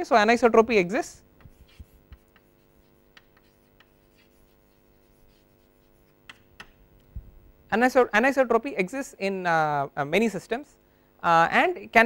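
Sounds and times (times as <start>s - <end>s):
chalk scratching on blackboard: 1.4s - 6.7s.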